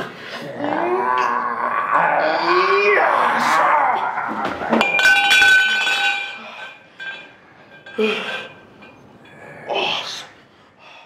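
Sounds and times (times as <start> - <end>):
metal pole clanging: 4.4 - 9.5.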